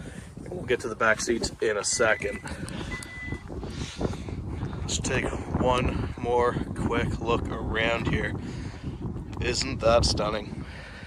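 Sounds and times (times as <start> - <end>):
wind rumbling on microphone: 0.0 - 11.0
high-pitched beep: 1.9 - 3.4.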